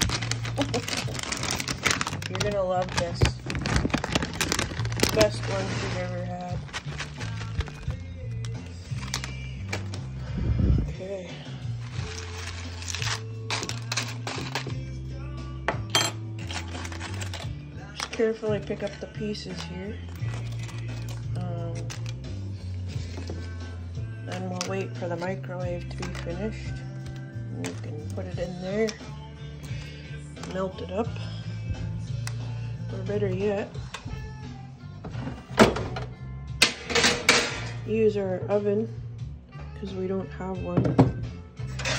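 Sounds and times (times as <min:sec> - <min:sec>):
background music with bass line: 0:00.0 - 0:41.9.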